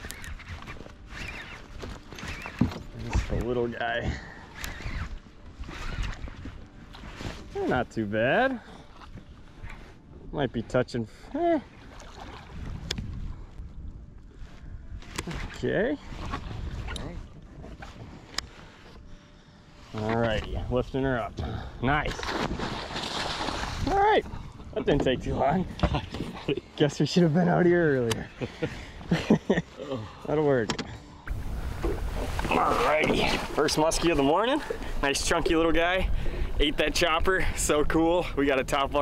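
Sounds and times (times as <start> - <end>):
water sloshing against boat: 0.0 - 26.8, 30.4 - 36.6
wind rumbling on microphone: 12.1 - 18.4, 20.3 - 26.6, 31.3 - 39.0.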